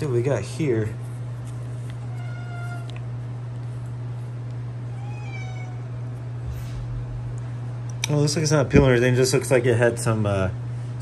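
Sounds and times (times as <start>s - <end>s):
steady low hum: 0.0s - 11.0s
cat meowing: 2.0s - 3.1s, 4.8s - 6.1s.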